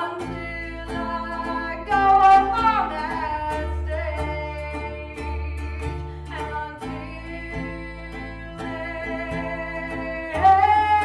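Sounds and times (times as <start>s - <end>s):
acoustic bass guitar: 0.0s - 11.0s
person singing: 0.0s - 11.0s
strummed ukulele: 0.0s - 11.0s.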